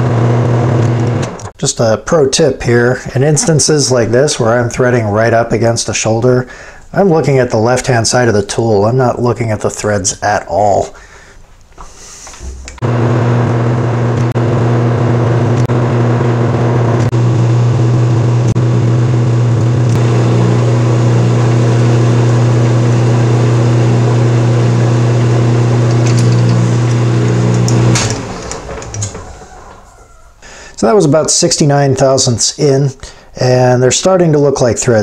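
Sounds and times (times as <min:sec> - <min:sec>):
lathe motor humming: 0:12.4 - 0:17.4, 0:19.8 - 0:30.2.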